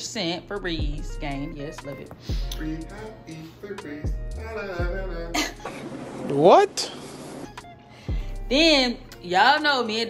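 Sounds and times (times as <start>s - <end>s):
background music with bass hits: 0.4s - 5.8s, 7.4s - 9.2s.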